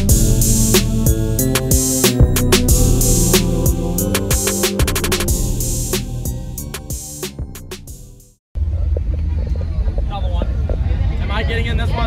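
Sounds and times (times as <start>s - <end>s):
background music: 0.0s - 8.4s
steady low rumble: 7.9s - 12.0s
people talking: 8.6s - 12.0s.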